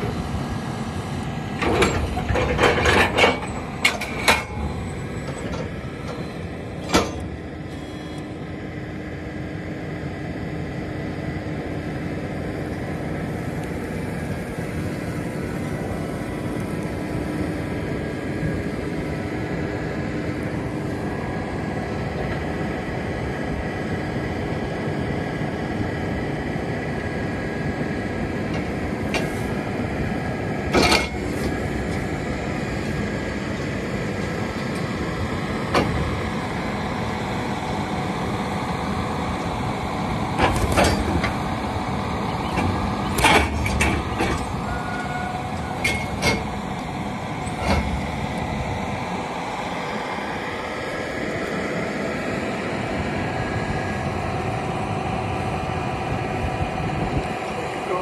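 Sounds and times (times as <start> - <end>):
tractor running steadily: 0.0 - 58.0
metal clanks from machinery: 1.6 - 7.3, 30.7 - 31.6, 40.4 - 41.4, 42.4 - 44.6, 45.6 - 46.6.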